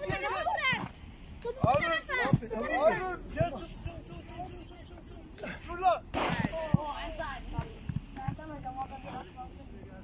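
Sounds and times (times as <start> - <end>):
football thuds: 0.0 - 2.7.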